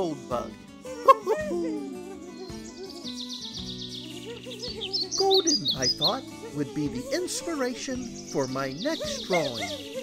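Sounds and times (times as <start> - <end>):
gentle music with low chords: 0.0 - 10.0.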